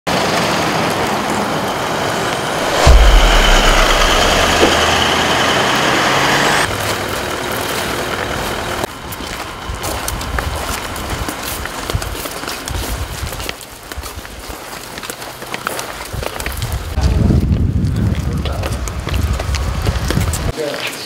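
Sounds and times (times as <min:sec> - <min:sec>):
loud vehicle: 0:00.1 - 0:11.0
vehicles driving past: 0:00.2 - 0:09.7.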